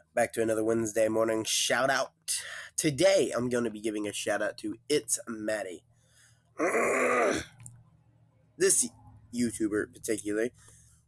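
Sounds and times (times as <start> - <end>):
man groaning: 6.6 - 7.5.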